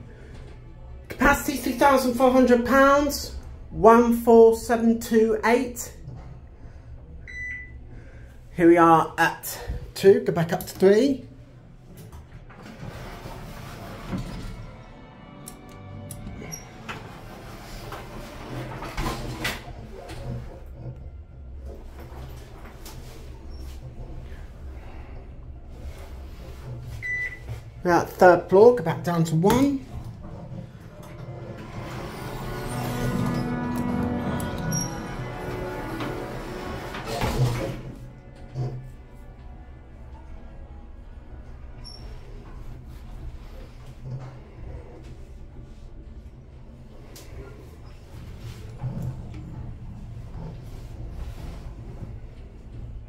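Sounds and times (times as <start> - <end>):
muffled background music: 0.0 - 53.0
elevator low hum: 11.2 - 53.0
elevator doors sliding closed: 11.8 - 27.8, 29.3 - 39.5, 46.9 - 53.0.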